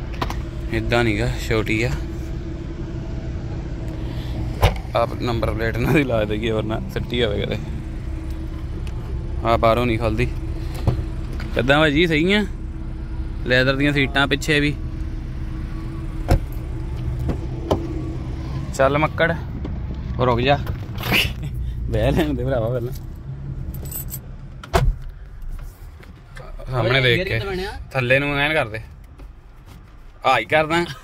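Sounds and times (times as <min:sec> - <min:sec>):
faint constant hum: 0:00.0 - 0:31.0
steady low rumble: 0:00.0 - 0:31.0
car door shutting: 0:00.1 - 0:00.5, 0:04.0 - 0:05.0, 0:10.3 - 0:11.6, 0:16.1 - 0:18.3, 0:23.7 - 0:26.4.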